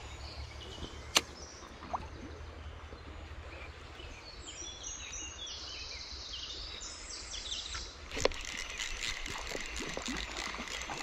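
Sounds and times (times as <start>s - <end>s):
fishing reel click: 8.1s - 11.0s.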